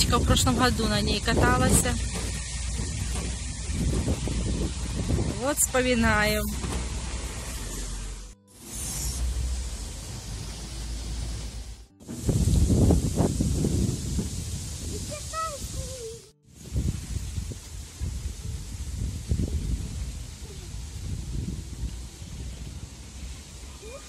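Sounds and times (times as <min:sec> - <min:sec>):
wind buffeting microphone: 0:00.0 - 0:07.1, 0:12.0 - 0:23.5
child's short vocal sound: 0:23.8 - 0:24.0.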